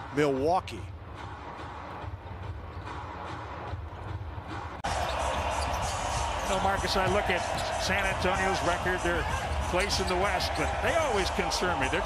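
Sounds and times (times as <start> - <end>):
sharp court noises: 4.8 - 12.0.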